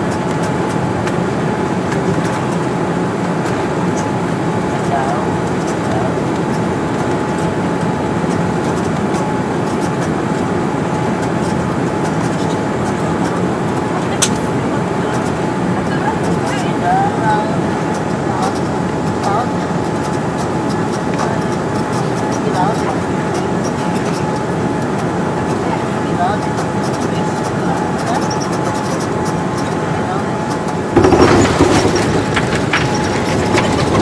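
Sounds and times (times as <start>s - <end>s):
aircraft rumbling on runway: 0.0s - 34.0s
jet engines and airflow rushing: 0.0s - 34.0s.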